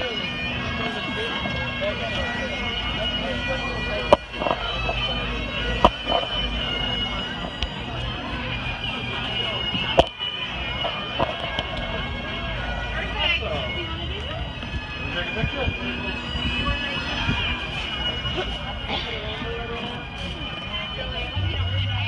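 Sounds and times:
bagpipes playing: 0:00.0 - 0:22.0
people talking: 0:00.0 - 0:22.0.

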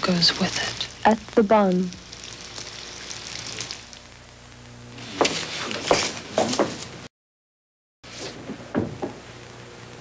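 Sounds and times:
faint crackle: 0:00.0 - 0:05.1
soft steady hiss: 0:00.0 - 0:05.9, 0:08.1 - 0:10.0.

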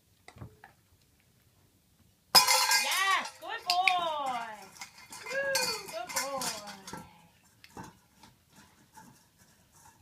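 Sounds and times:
metal dog bowls clinking: 0:02.4 - 0:09.2.

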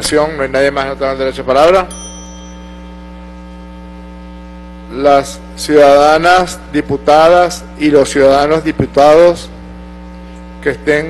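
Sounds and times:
electrical mains hum: 0:00.0 - 0:11.0
desk tap bell ringing: 0:01.9 - 0:03.2.

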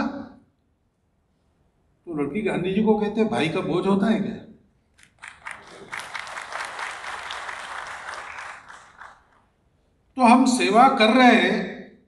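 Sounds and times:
audience applauding: 0:05.0 - 0:09.5.

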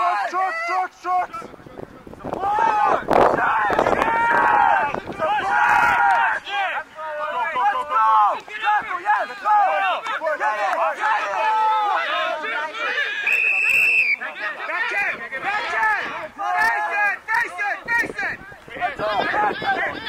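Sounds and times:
people shouting: 0:00.0 - 0:01.4, 0:02.4 - 0:20.0
referee's whistle blast: 0:13.2 - 0:14.3.

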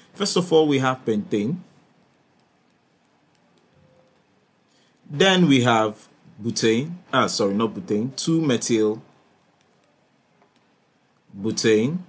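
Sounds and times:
stylus ticking on tablet: 0:02.3 - 0:04.3.

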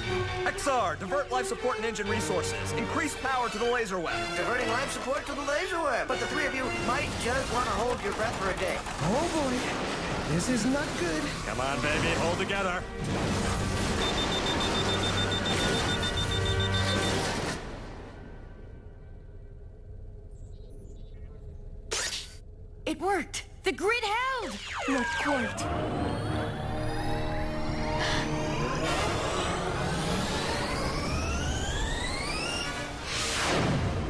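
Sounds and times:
rapid electronic alarm beeping: 0:13.8 - 0:17.4, 0:24.5 - 0:33.1
rising energy weapon whine: 0:24.6 - 0:34.0.

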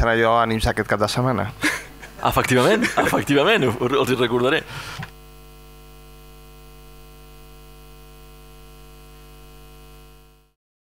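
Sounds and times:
electrical mains hum: 0:00.0 - 0:10.5.

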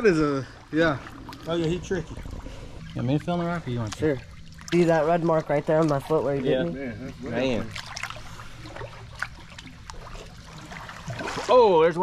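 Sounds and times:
creek water trickling: 0:00.0 - 0:12.0
small sharp splashes: 0:07.6 - 0:11.8.

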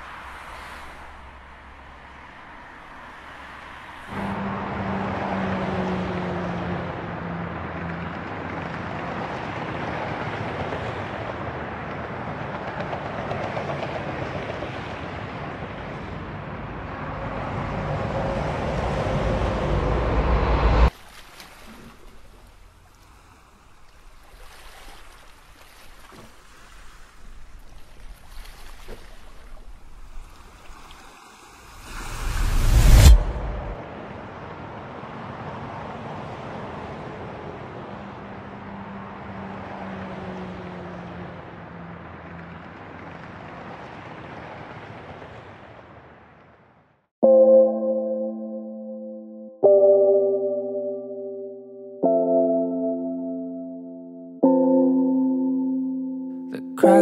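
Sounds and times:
road traffic noise: 0:00.0 - 0:21.0, 0:29.9 - 0:46.4
engine with falling tone: 0:16.2 - 0:20.9, 0:31.7 - 0:33.8.

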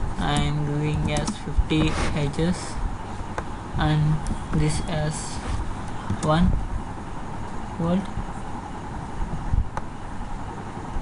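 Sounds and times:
low background rumble and hiss: 0:00.0 - 0:11.0.

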